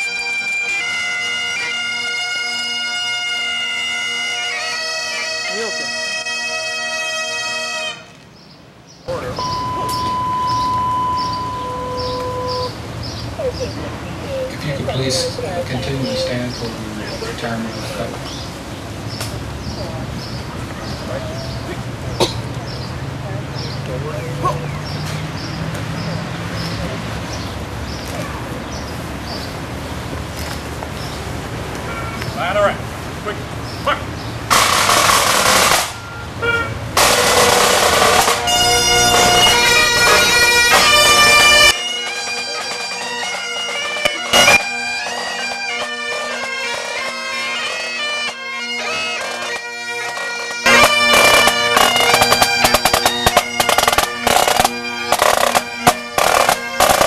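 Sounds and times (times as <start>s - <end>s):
bagpipes with drones: 0.0s - 8.1s, 9.1s - 13.0s, 13.8s - 18.4s, 33.9s - 57.0s
outdoor background noise: 0.0s - 57.0s
short high chirps: 9.1s - 12.8s
high whistle-like tone: 9.4s - 12.7s
snare drum roll: 51.1s - 57.0s.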